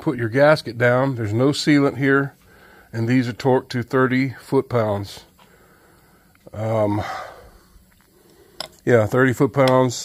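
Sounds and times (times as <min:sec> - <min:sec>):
man speaking: 0:00.0 - 0:05.3, 0:06.5 - 0:07.5, 0:08.8 - 0:10.0.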